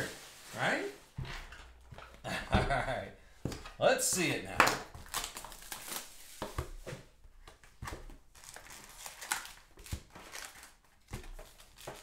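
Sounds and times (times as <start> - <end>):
foil wrappers crinkling: 5.0 - 6.6, 8.3 - 12.0.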